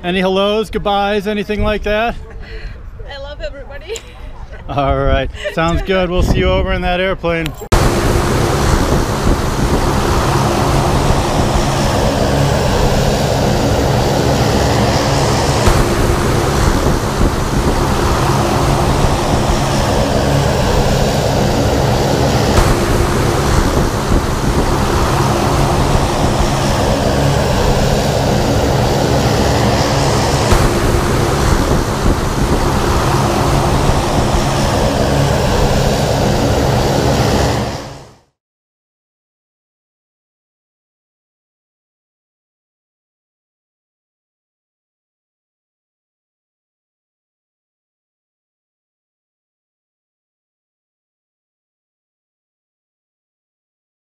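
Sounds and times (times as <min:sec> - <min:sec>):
rushing wind: 0:00.0 - 0:38.3
propeller airplane engine drone: 0:03.6 - 0:38.4.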